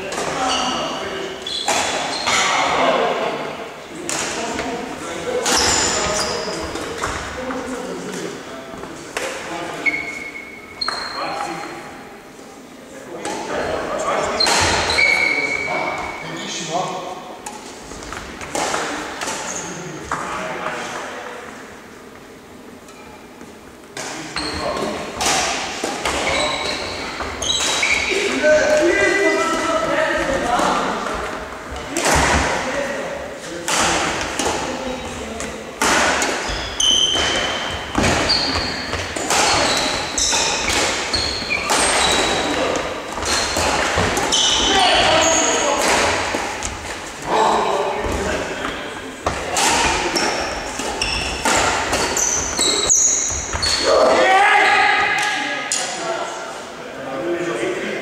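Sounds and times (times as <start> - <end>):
players' voices: 0.0 - 58.0
shoes squeaking on court floor: 0.1 - 2.7, 5.5 - 7.3, 9.7 - 11.8, 13.3 - 16.5, 22.9 - 25.1, 25.9 - 31.4, 36.2 - 47.2, 48.0 - 54.0
racket hitting shuttlecock: 1.6 - 2.5, 14.4 - 14.9, 25.2 - 28.8, 35.4 - 44.6, 45.8 - 47.0, 49.2 - 53.8.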